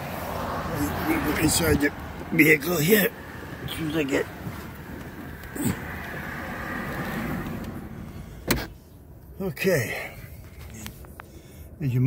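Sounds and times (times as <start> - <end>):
car engine idling: 0.0 - 11.7
car door shutting: 6.8 - 8.8.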